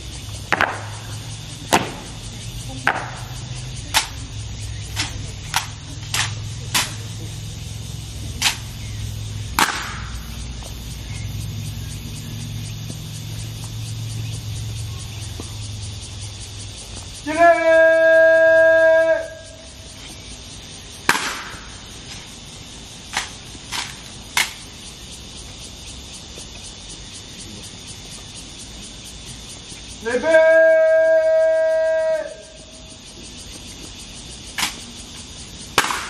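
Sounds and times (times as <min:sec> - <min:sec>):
sharp rifle crack: 0:00.5 - 0:01.1, 0:05.0 - 0:07.1, 0:08.4 - 0:08.8, 0:09.5 - 0:10.3, 0:21.0 - 0:21.9, 0:35.7 - 0:36.0
long shouted drill command: 0:17.2 - 0:19.6, 0:30.0 - 0:32.6.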